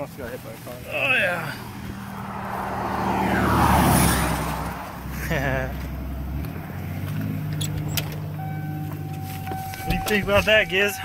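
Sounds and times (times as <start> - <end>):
vehicle passing on highway: 0.8 - 9.1.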